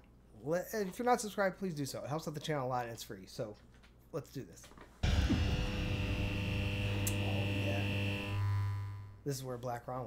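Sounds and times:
electric neon sign buzz: 0:05.0 - 0:09.3
higher tone: 0:05.0 - 0:09.3.

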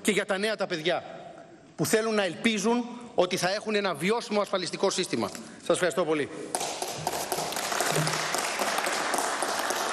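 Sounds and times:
crowd applauding: 0:06.5 - 0:09.9.

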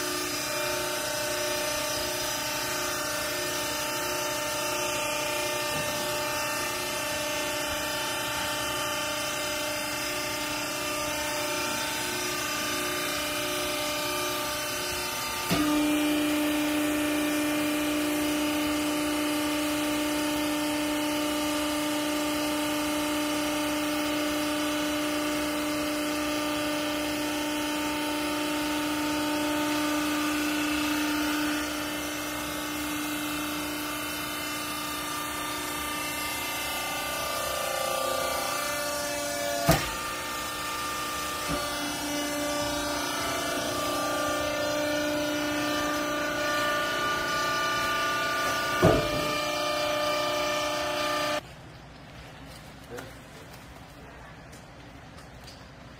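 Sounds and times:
hydraulic baler humming: 0:00.0 - 0:51.4
sharp knock: 0:48.8 - 0:49.4.

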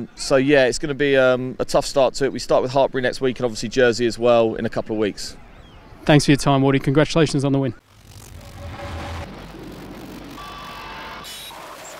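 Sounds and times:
steady rushing noise: 0:07.8 - 0:11.8.

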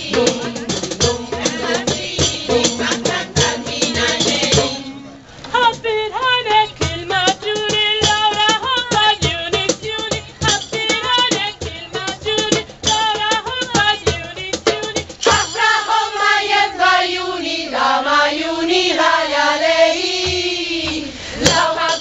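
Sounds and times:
hand percussion beat: 0:00.0 - 0:04.8, 0:06.8 - 0:16.7, 0:20.2 - 0:22.0
women's choir singing: 0:00.0 - 0:22.0.

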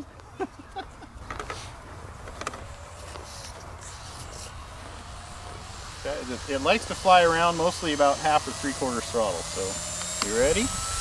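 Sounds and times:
faint rising and falling whine: 0:00.0 - 0:11.0.

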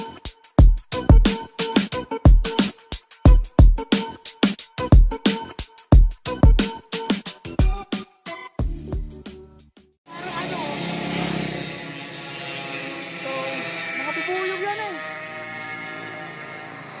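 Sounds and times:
background music with beat: 0:00.0 - 0:10.0
person speaking over music: 0:13.2 - 0:15.2.

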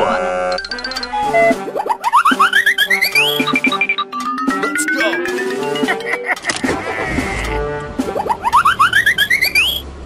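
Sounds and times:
music: 0:00.0 - 0:09.8
sliding pitch cartoon effects: 0:00.5 - 0:09.8.

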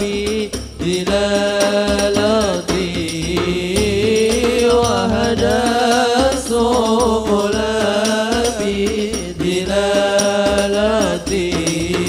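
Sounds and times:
frame drums beating: 0:00.0 - 0:12.0
voices singing: 0:00.0 - 0:12.0.

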